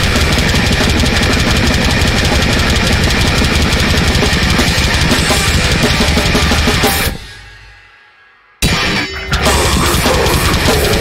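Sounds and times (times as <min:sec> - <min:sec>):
distorted bass guitar: 0:00.0 - 0:07.8, 0:08.6 - 0:11.0
rapid kick drum and snare: 0:00.0 - 0:07.8, 0:08.6 - 0:11.0.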